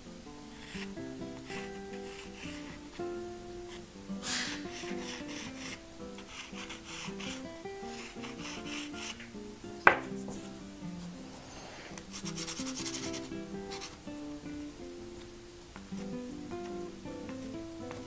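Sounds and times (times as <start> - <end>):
background music: 0.0 - 18.0
pastel scratching on paper: 0.5 - 3.0, 3.7 - 9.2, 11.3 - 14.0.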